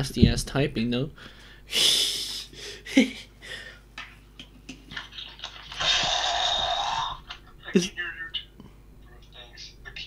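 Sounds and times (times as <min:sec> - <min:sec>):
person laughing: 0:01.8 - 0:03.4
person sighing: 0:05.8 - 0:07.2.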